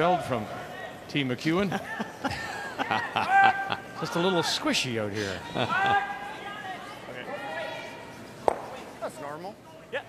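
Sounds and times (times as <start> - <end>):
players' voices: 0.0 - 10.0.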